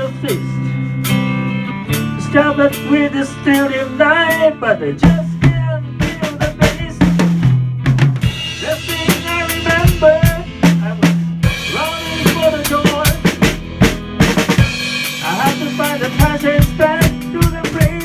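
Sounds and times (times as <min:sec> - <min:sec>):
electric guitar melody: 0:00.0 - 0:18.0
pop-rock band playing: 0:00.0 - 0:18.0
bass drum and snare strokes: 0:05.0 - 0:18.0.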